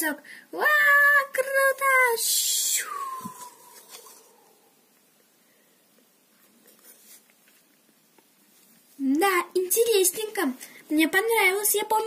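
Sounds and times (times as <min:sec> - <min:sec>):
child's voiced sliding whistle: 0:02.7 - 0:03.7.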